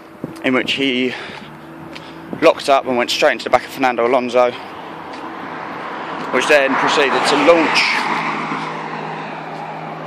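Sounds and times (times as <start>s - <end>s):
steady low hum: 0.0s - 6.2s
car passing on road: 0.0s - 10.0s.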